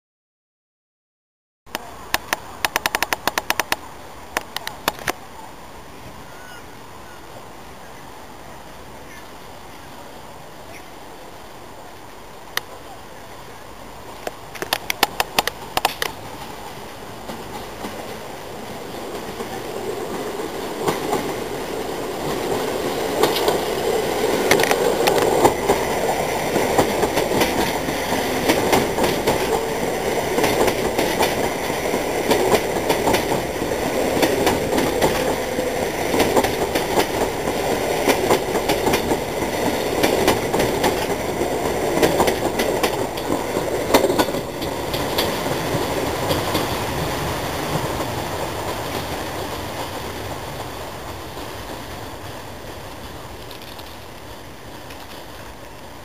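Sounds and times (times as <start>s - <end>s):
train running rumble: 13.7s - 56.0s
train wheels clacking over joints: 14.6s - 54.1s.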